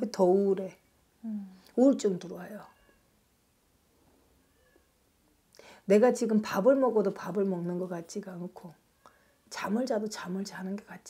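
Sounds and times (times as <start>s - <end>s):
person speaking: 1.2s - 2.7s.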